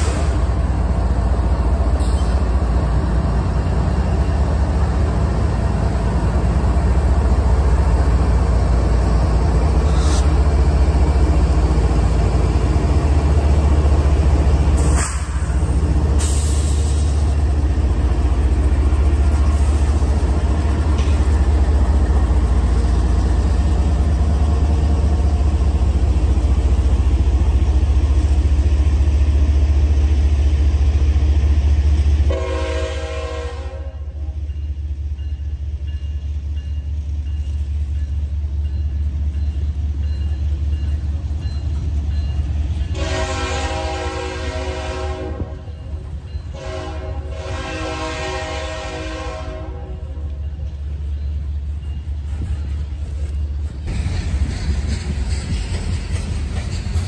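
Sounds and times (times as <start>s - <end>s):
diesel locomotive engine rumble: 0.0s - 57.0s
multi-chime locomotive horn: 32.3s - 34.4s, 42.8s - 50.3s.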